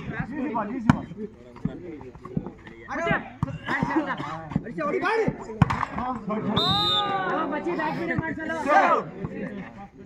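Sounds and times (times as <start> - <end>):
players shouting: 6.3 - 9.5
referee's whistle blast: 6.5 - 7.2.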